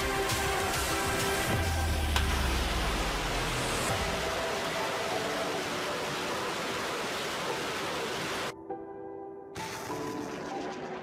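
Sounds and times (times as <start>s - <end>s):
rockets launching roar: 9.6s - 11.0s.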